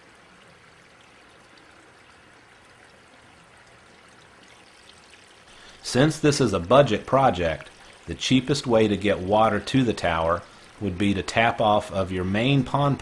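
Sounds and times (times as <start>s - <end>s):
water trickling and splashing: 0.0s - 13.0s.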